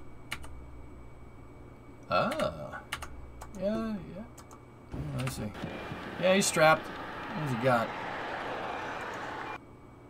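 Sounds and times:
vehicle engine running: 0:04.9 - 0:09.6.

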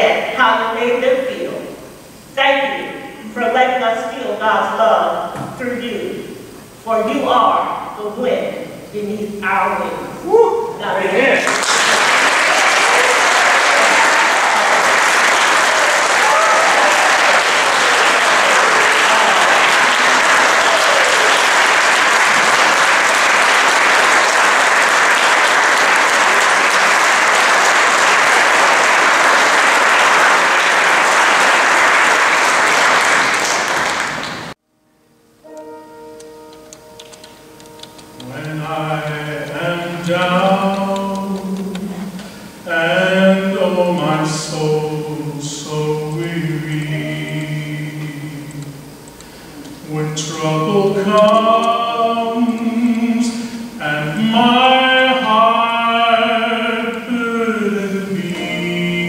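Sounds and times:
crowd clapping: 0:11.2 - 0:34.6
soft piano notes: 0:35.2 - 0:42.5
man singing: 0:38.2 - 0:48.9, 0:49.8 - 0:59.0.

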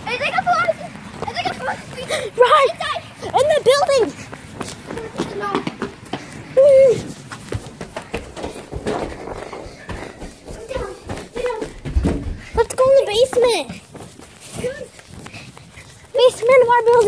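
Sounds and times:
knocks and footfalls: 0:03.2 - 0:15.3.

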